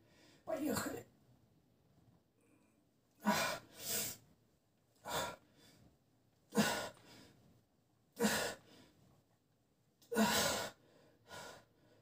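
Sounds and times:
man breathing heavily: 5.0s - 5.9s, 6.5s - 7.4s, 8.2s - 9.0s, 10.1s - 12.0s.

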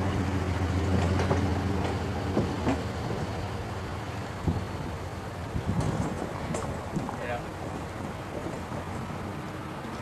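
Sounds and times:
wind buffeting microphone: 0.5s - 10.0s.

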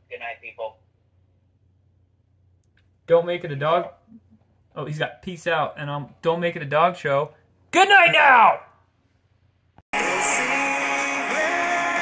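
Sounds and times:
outro music: 10.0s - 12.0s.

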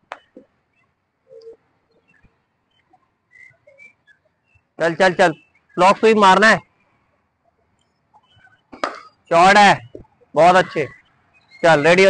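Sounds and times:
faint high chirps: 0.2s - 12.0s.

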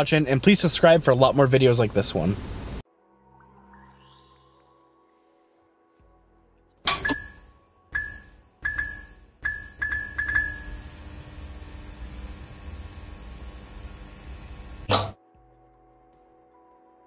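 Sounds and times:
electric clicks with ringing pings: 8.0s - 11.1s
steady electrical hum: 8.8s - 15.1s.

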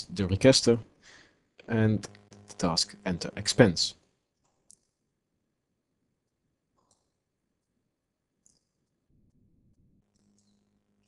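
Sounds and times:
computer mouse clicks: 4.4s - 5.0s, 6.8s - 7.2s, 8.4s - 8.9s, 10.1s - 10.6s.

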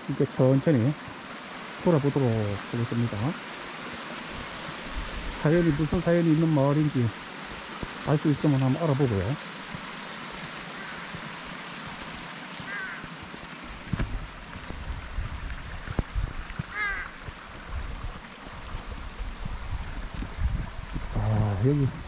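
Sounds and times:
mountain stream rushing: 0.0s - 22.0s
crows cawing: 5.4s - 6.0s, 10.6s - 11.3s, 12.6s - 13.4s, 16.7s - 17.2s.

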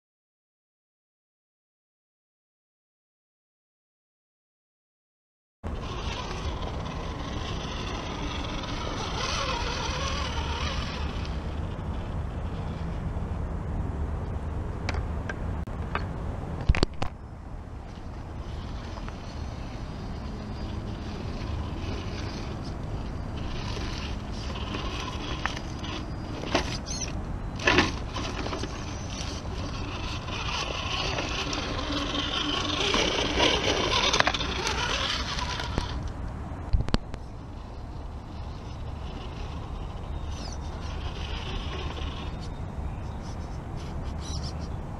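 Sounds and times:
toy car motor whirring: 5.7s - 12.9s, 17.9s - 36.1s, 37.3s - 44.8s.

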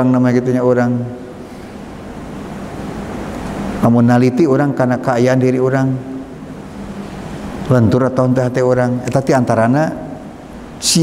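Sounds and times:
electric fan airy rush: 0.0s - 11.0s.

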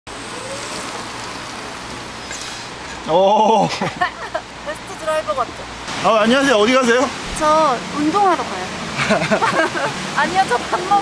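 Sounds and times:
tyres hissing on wet pavement: 0.1s - 11.0s.

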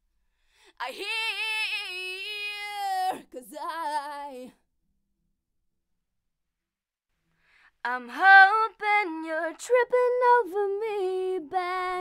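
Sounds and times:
woman singing unaccompanied: 0.8s - 4.6s, 7.8s - 12.0s.

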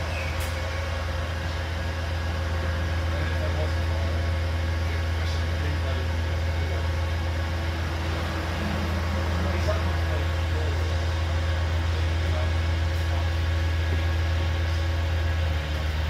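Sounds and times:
bus engine droning: 0.0s - 16.0s
road and cabin noise hiss: 0.0s - 16.0s.

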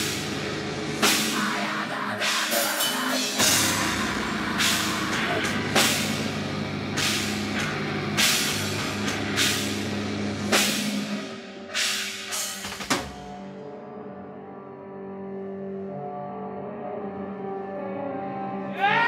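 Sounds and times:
rock band playing loud: 0.0s - 11.4s
cymbal crash: 0.0s - 13.5s.

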